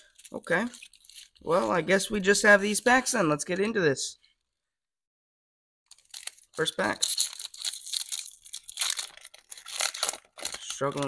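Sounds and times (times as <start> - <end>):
foil wrapper being torn open: 0.0 - 1.7, 5.9 - 11.0
crackling rips and crinkles: 0.0 - 2.3, 5.9 - 11.0.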